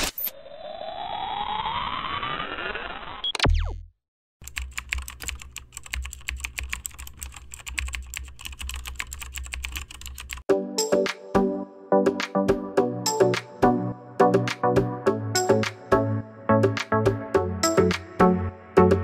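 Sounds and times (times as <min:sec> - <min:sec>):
rising electronic sweep: 0:00.0 - 0:03.8
sharp glitch: 0:00.0 - 0:03.9
keyboard typing clicks: 0:04.4 - 0:10.4
music: 0:10.5 - 0:19.0.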